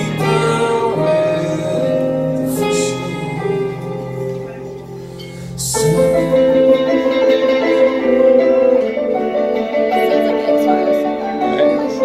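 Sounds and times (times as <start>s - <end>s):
electric guitar sustained chords: 0.0s - 12.0s
electric keyboard chords: 0.0s - 12.0s.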